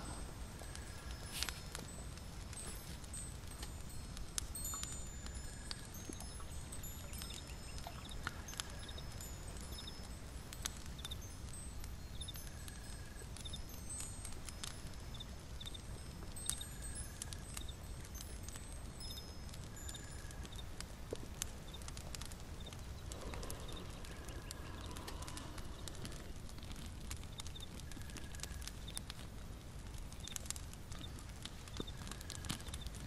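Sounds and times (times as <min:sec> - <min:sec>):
high chime-like tinkles: 0:00.0 - 0:21.0
steady low rumble: 0:20.5 - 0:27.6.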